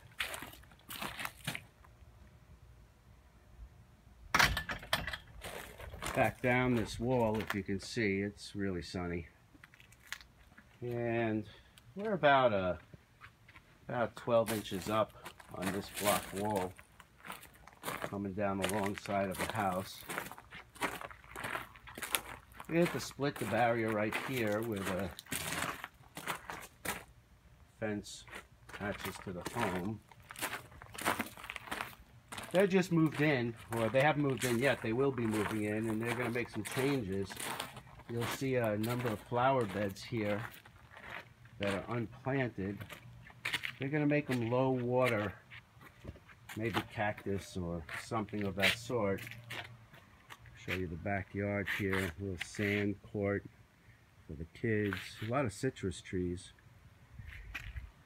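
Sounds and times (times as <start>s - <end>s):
footsteps crunching on dry leaves: 0.0s - 1.7s, 14.4s - 27.1s, 28.2s - 51.0s.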